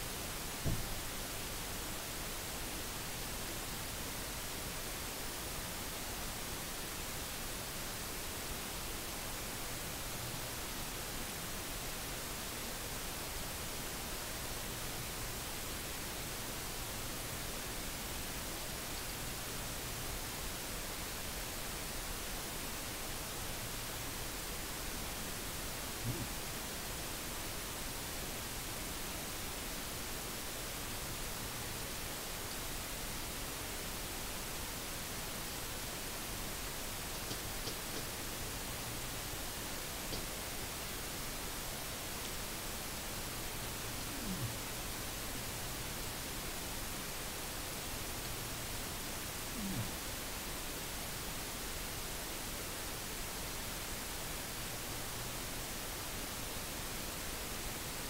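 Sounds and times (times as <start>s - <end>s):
faint low hum: 0.0s - 58.0s
recording hiss: 0.0s - 58.0s
soft knock: 0.6s - 0.9s.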